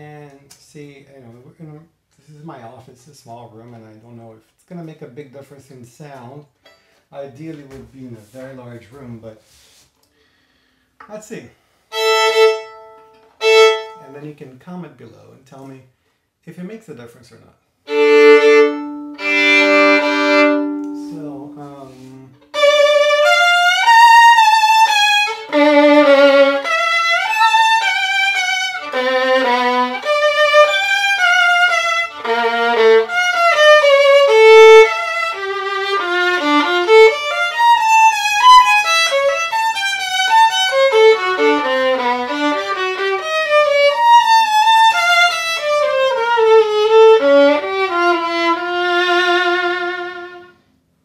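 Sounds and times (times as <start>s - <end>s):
violin melody with vibrato: 11.9s - 14.2s, 17.9s - 50.6s.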